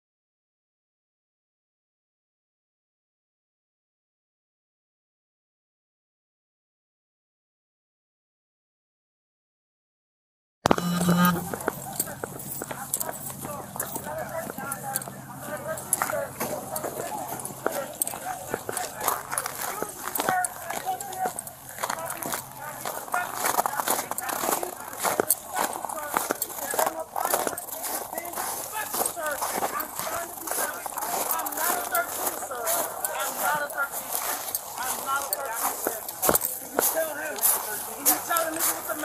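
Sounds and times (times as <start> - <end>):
raised voice: 10.7 - 11.7
faint voices: 10.7 - 39.0
hurried footsteps on snow: 11.4 - 39.0.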